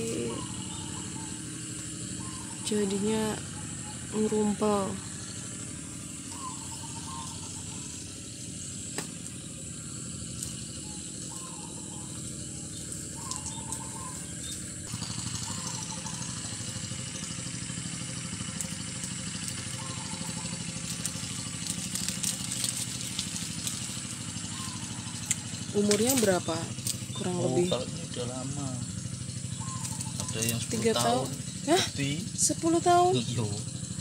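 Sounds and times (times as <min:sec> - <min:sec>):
motor running with low throb: 0:00.0 - 0:34.0.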